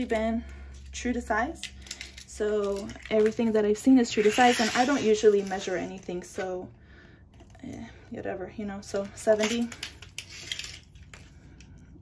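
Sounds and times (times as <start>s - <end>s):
plastic film rustling: 1.8s - 6.4s, 9.1s - 11.2s.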